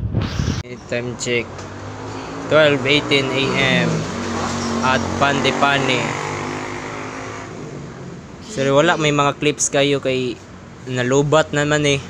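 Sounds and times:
vehicle engine running: 0.8s - 10.8s.

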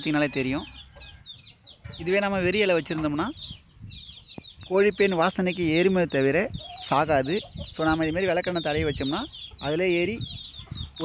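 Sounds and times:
chickens calling: 0.0s - 11.0s.

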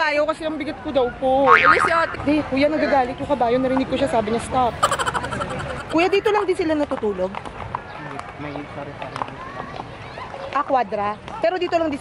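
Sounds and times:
people talking: 1.6s - 2.9s, 4.6s - 6.7s.

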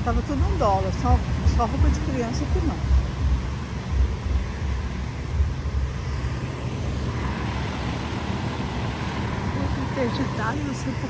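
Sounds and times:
street traffic: 0.0s - 11.0s
wind rumble on microphone: 0.0s - 11.0s.

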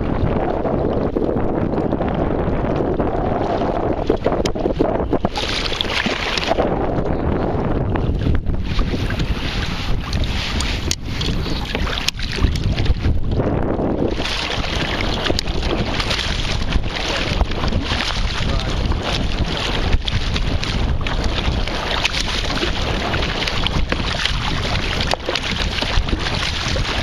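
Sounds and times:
paddle splashing through water: 0.0s - 7.1s, 7.7s - 27.0s
wind buffeting microphone: 0.0s - 27.0s.

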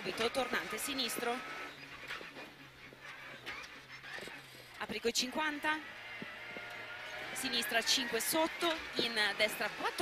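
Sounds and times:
car engine low hum: 0.0s - 10.0s.

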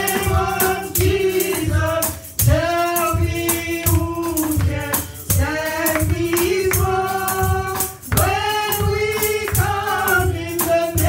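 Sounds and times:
percussion beat: 0.0s - 11.0s
woman singing gospel: 0.0s - 11.0s.

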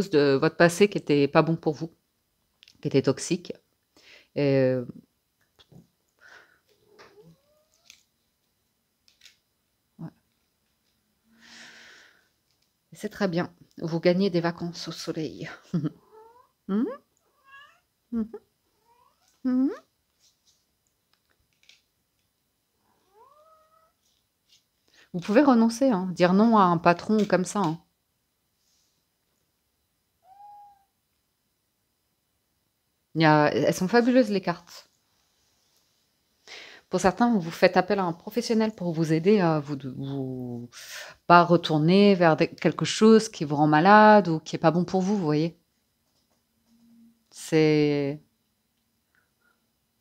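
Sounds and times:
faint cat meow: 6.7s - 8.0s, 16.0s - 17.9s, 18.7s - 19.9s, 22.8s - 24.1s, 30.2s - 31.0s.

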